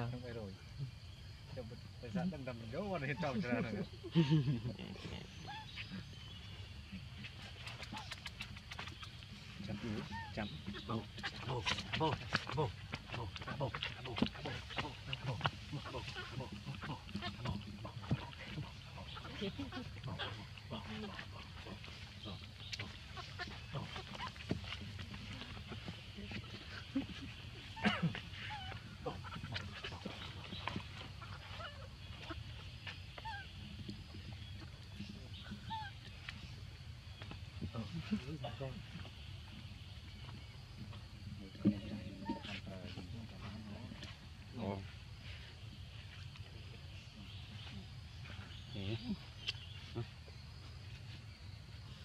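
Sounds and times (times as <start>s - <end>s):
macaques grunting and squeaking: 2.7s - 52.0s
baby macaque calling: 6.9s - 25.9s, 27.0s - 32.5s, 35.4s - 36.2s
people's voices: 9.6s - 30.8s.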